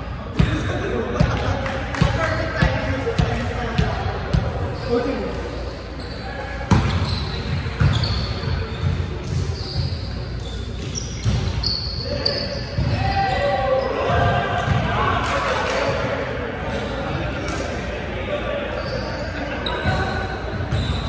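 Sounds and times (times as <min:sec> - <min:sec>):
shoes squeaking on floor: 0:05.9 - 0:13.4, 0:20.7 - 0:21.0.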